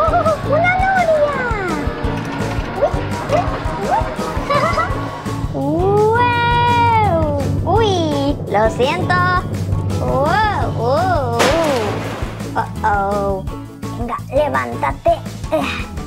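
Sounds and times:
playful children's music: 0:00.0 - 0:16.0.

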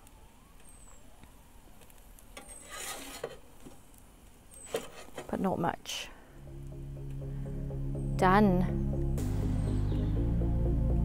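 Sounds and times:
metal peel scraping baking stone: 0:02.4 - 0:03.5, 0:04.6 - 0:05.4.

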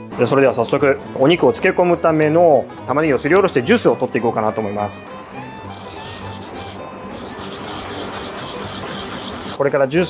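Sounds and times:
onion rasping on a grater: 0:05.6 - 0:09.6.

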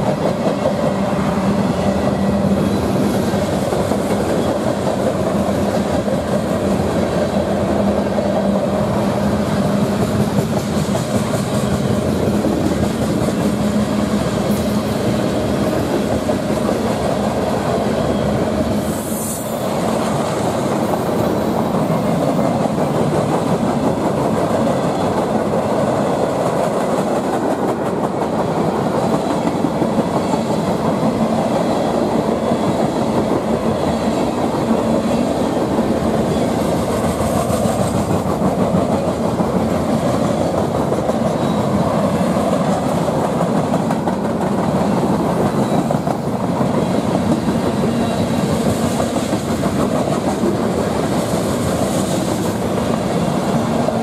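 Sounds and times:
clickety-clack over rail joints: 0:00.0 - 0:54.0
train wheels rumbling on rail: 0:00.0 - 0:54.0.

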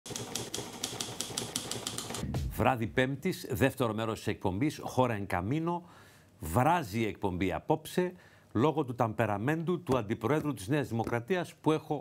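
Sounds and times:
typewriter keys striking: 0:00.1 - 0:02.2.

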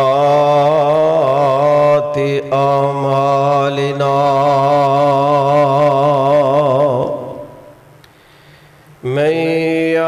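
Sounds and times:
man chanting into microphone: 0:00.0 - 0:07.8, 0:09.0 - 0:10.0.

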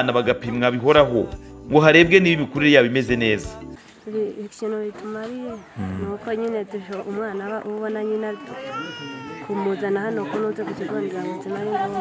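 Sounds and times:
woman speaking: 0:04.1 - 0:12.0.

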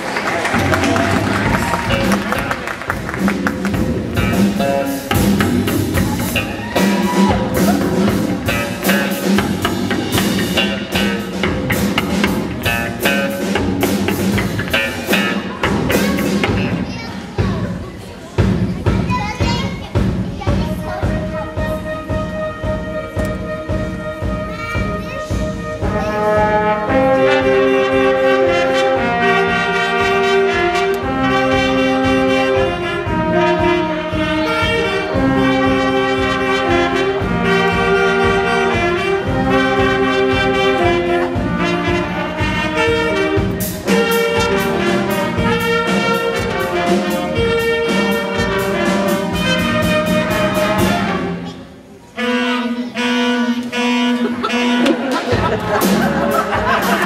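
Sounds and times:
brass band playing: 0:00.0 - 0:17.8, 0:20.0 - 0:57.0
drum kit: 0:00.0 - 0:51.5, 0:53.7 - 0:57.0.

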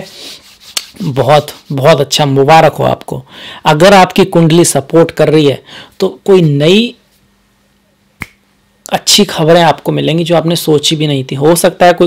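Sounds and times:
person speaking: 0:00.0 - 0:07.1, 0:08.8 - 0:12.0
finger snap: 0:08.2 - 0:08.4.

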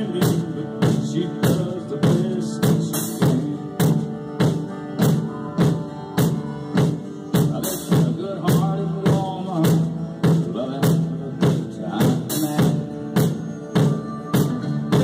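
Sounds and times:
drum kit country groove: 0:00.0 - 0:15.0
recorded country song: 0:00.0 - 0:15.0.

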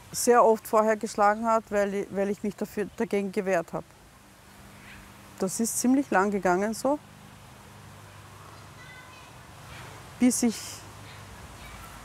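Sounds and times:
faint outdoor hum: 0:00.0 - 0:12.0.

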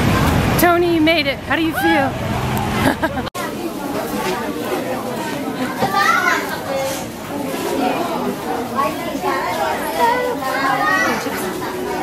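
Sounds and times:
overlapping voices chattering: 0:00.6 - 0:12.0.

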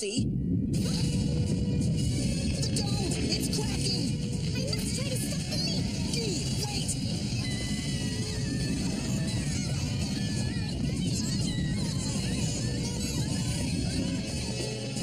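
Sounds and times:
dramatic cartoon music: 0:00.0 - 0:15.0
low rumble of ground tremors: 0:00.0 - 0:15.0.

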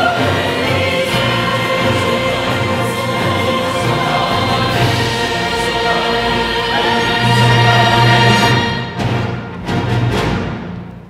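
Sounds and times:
singers singing sustained notes: 0:00.0 - 0:09.3
orchestra of bowed strings: 0:00.0 - 0:10.6.

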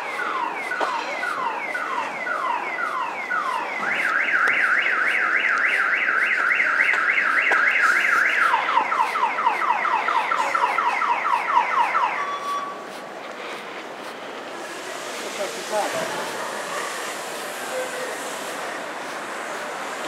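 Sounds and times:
car alarm siren: 0:00.0 - 0:12.8.

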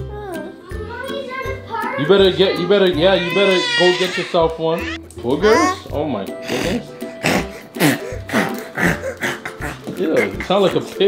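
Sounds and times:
background music: 0:00.0 - 0:11.0
girl making pig-like noises: 0:05.4 - 0:05.8.

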